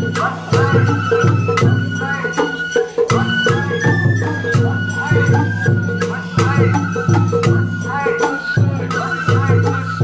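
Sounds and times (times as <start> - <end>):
bamboo flute long high notes: 0.0 - 10.0
drums steady beat: 0.0 - 10.0
hand drum: 0.0 - 10.0.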